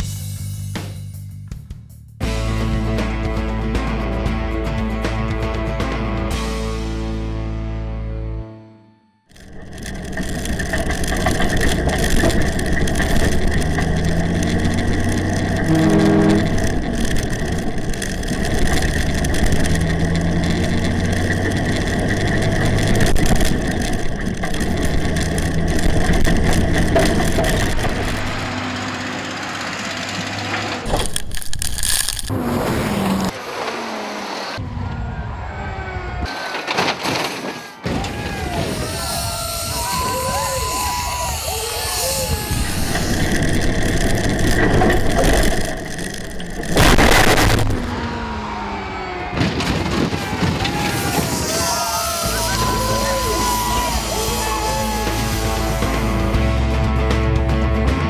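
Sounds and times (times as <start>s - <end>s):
truck engine accelerating: 9.2s - 36.7s, 38.6s - 58.0s.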